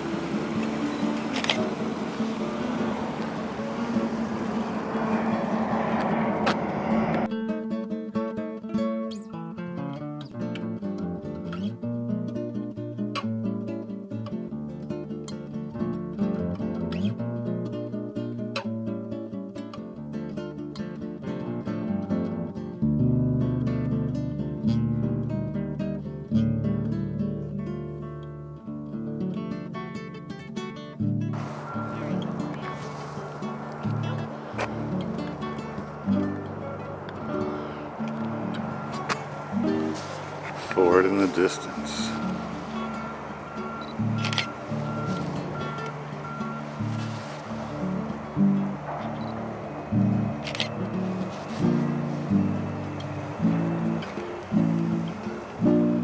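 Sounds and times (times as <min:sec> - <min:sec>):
acoustic guitar music: 0:00.0 - 0:56.0
wind: 0:00.0 - 0:56.0.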